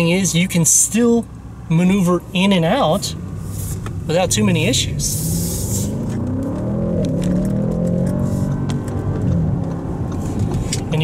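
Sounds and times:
car engine accelerating: 1.3 - 11.0.

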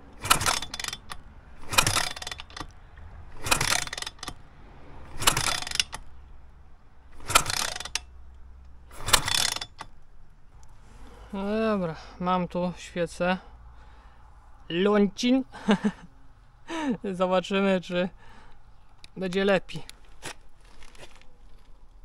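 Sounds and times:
kickstart ratcheting: 0.1 - 4.4, 5.0 - 6.2, 7.1 - 8.2, 8.8 - 10.0.

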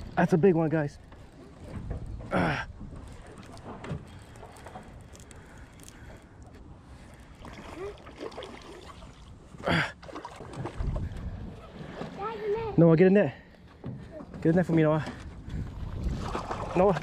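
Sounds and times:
water sloshing: 0.8 - 12.8, 13.5 - 17.0
wind on microphone: 10.6 - 12.0, 15.4 - 17.0.

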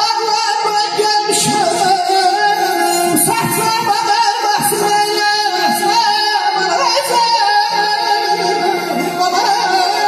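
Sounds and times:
person singing ornamented vocals: 0.0 - 10.0
held instrumental tones: 1.5 - 10.0.

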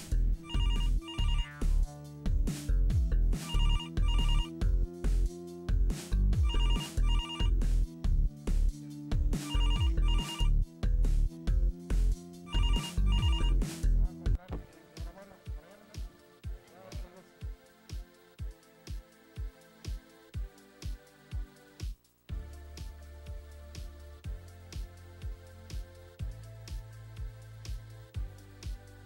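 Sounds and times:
electronic telephone ringing: 0.4 - 1.5, 3.4 - 4.5, 6.4 - 7.6, 9.4 - 10.5, 12.5 - 13.6.

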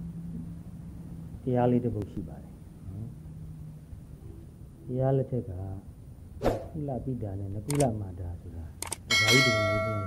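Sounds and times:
sharp clicks: 7.7 - 7.9, 8.8 - 9.1
small metal bell ringing: 9.1 - 10.0.

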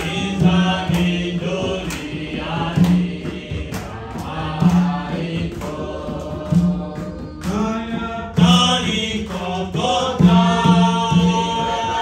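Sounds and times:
man singing worship song: 0.0 - 12.0.

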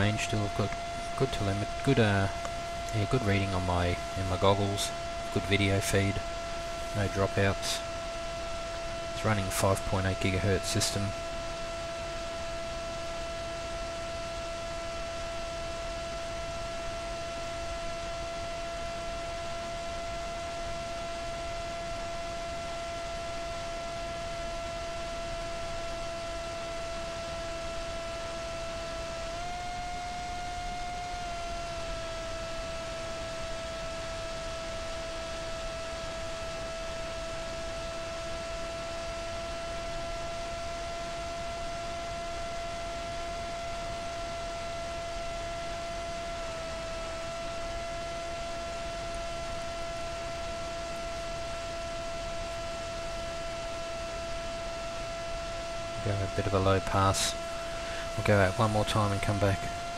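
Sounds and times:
motor and propeller whine: 0.0 - 59.9.

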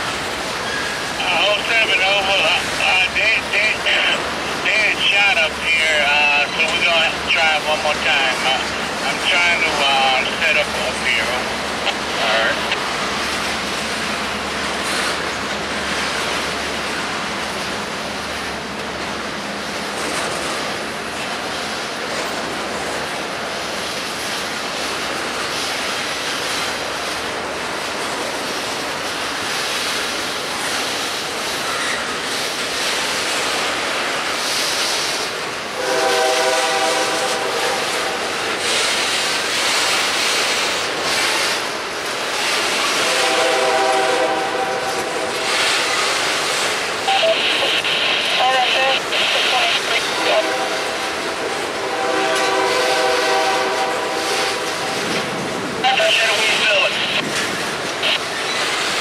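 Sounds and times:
freight train wheels rumbling: 0.0 - 59.0
train horn blasts: 35.8 - 38.4, 42.9 - 45.6, 50.0 - 55.0.

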